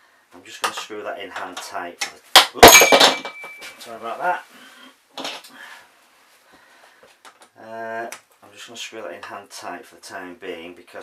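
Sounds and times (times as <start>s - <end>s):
metal hardware clinking: 2.6s - 3.8s.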